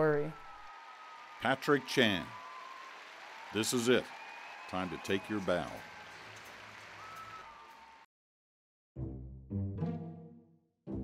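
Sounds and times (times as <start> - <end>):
distant crowd applause: 0.0 - 8.1.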